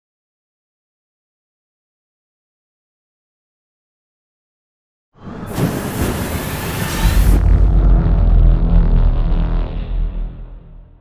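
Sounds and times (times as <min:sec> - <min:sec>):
loud fiery hiss: 0:05.5 - 0:07.5
dark low music: 0:07.0 - 0:11.0
deep bass rumble: 0:07.0 - 0:11.0.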